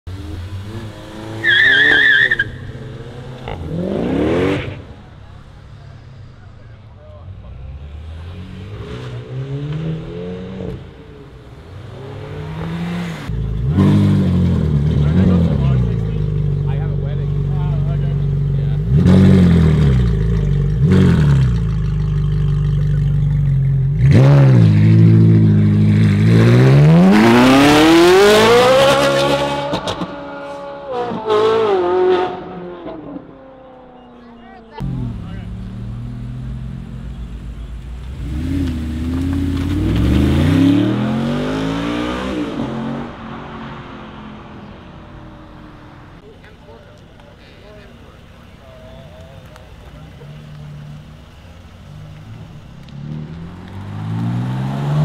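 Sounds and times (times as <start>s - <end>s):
car accelerating hard: 0.1s - 5.2s, 7.6s - 46.2s, 49.5s - 55.0s
car engines revving: 0.1s - 55.0s.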